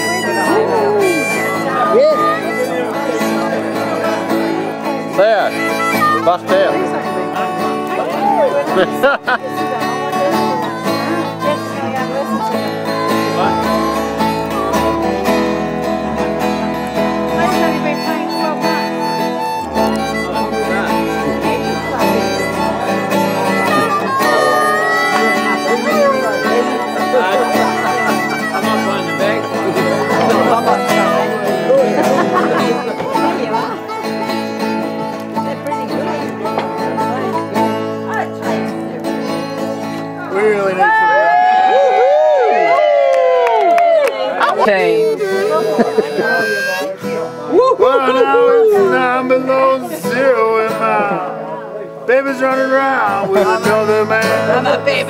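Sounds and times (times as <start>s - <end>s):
harmonica playing blues: 0.0s - 41.1s, 44.4s - 55.0s
acoustic guitar strumming: 0.0s - 41.2s, 44.3s - 55.0s.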